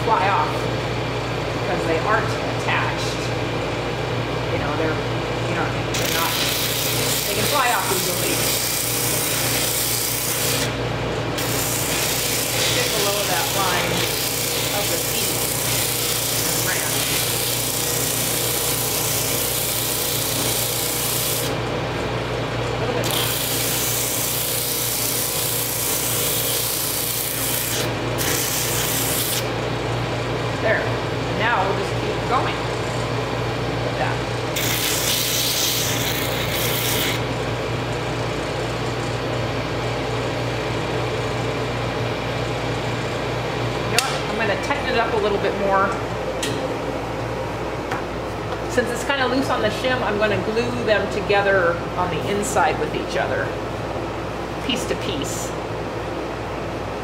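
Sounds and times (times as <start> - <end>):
drum sander motor hum: 0.0 - 48.8.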